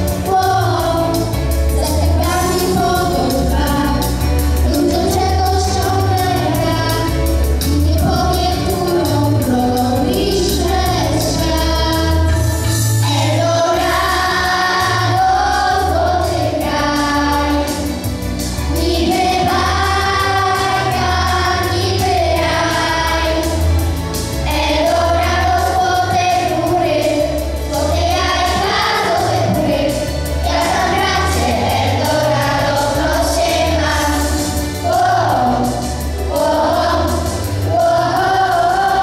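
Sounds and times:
children singing together: 0.0s - 18.1s, 18.7s - 39.0s
instrumental accompaniment with beat: 0.0s - 39.0s.

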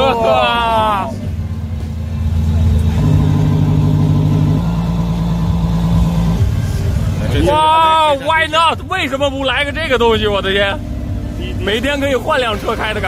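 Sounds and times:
synthesized engine drone: 0.0s - 13.0s.

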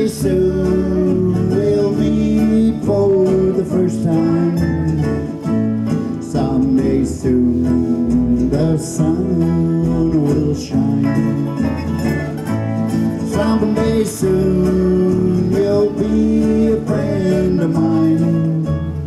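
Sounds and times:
guitar: 0.0s - 19.0s
live country band playing: 0.0s - 19.0s
sliding lead instrument notes: 0.2s - 19.0s.

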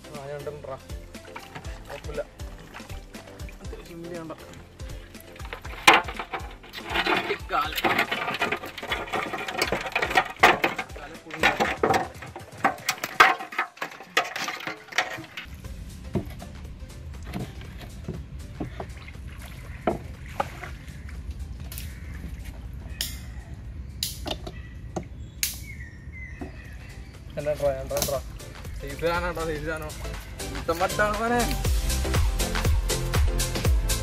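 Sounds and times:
crabs clattering in metal basin: 1.0s - 15.6s
splashes and knocks: 1.0s - 16.5s, 17.1s - 22.6s
bird chirping: 20.8s - 30.7s.

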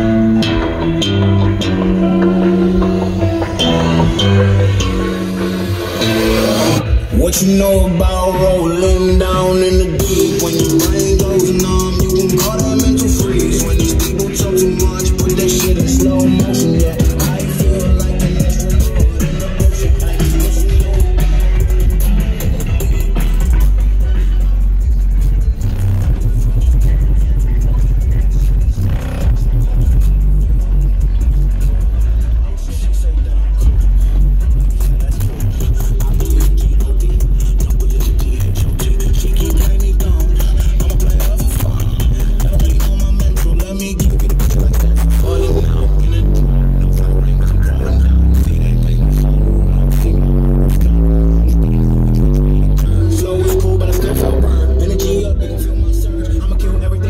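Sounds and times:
bass-heavy music with vocals: 0.0s - 57.0s
loud hip-hop through car subwoofers: 0.0s - 57.0s.

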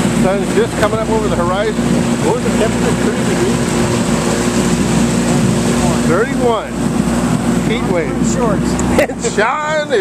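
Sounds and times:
boat motor running: 0.0s - 10.0s.

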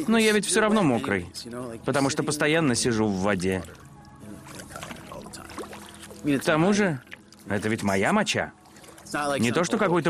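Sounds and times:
urine splashing into water: 3.4s - 7.8s.

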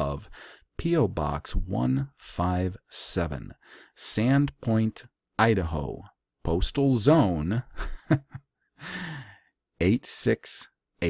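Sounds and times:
man laughing: 7.6s - 9.2s
breathy sigh: 8.8s - 9.5s.

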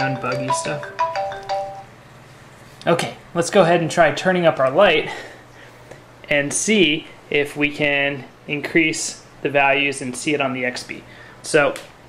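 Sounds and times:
bell-like chime tones: 0.0s - 1.9s.

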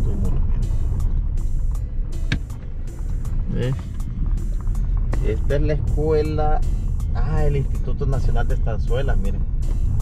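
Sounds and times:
music with a steady beat: 0.0s - 10.0s
road and engine rumble: 0.0s - 10.0s.

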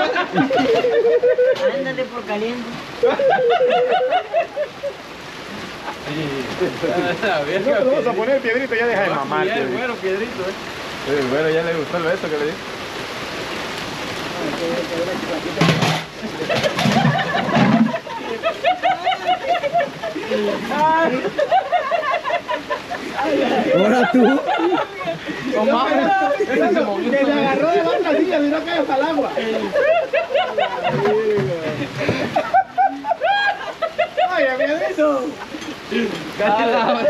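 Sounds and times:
men laughing and whooping: 0.0s - 2.2s, 2.8s - 8.2s, 16.2s - 37.0s
men talking: 0.0s - 37.0s
rain on wet patio: 0.0s - 37.0s
rhythmic laughter: 16.2s - 25.5s.

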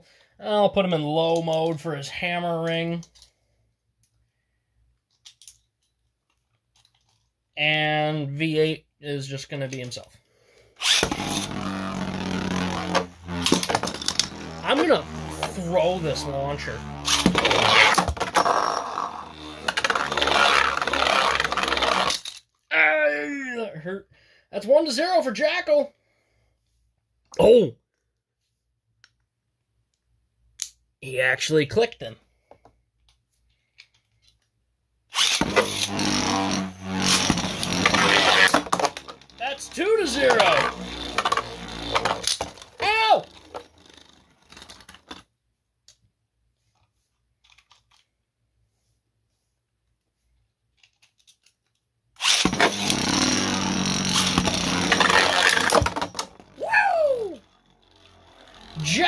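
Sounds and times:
plastic clicks and rattles: 5.1s - 7.3s
spinning tops whirring and scraping: 10.8s - 22.4s, 35.1s - 45.2s, 52.2s - 59.0s.

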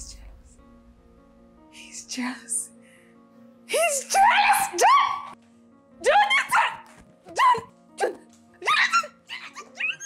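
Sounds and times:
background music: 0.0s - 10.0s
woman squealing excitedly: 3.9s - 5.4s, 8.6s - 10.0s.

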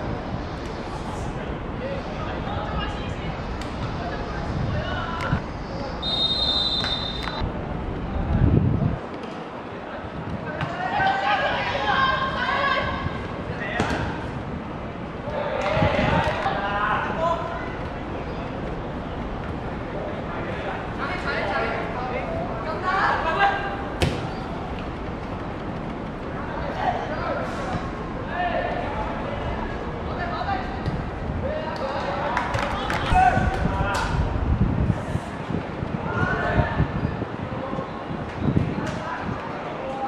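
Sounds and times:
wind rumble on microphone: 2.6s - 5.9s, 7.4s - 10.6s, 15.6s - 16.5s, 30.6s - 40.0s
football kicked with a thud: 24.0s - 24.4s.

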